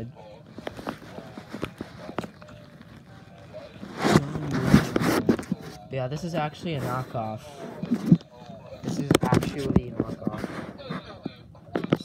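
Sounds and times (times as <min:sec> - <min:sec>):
rubbing noise: 0:00.5 - 0:11.2
low mumbled voice: 0:03.1 - 0:05.8.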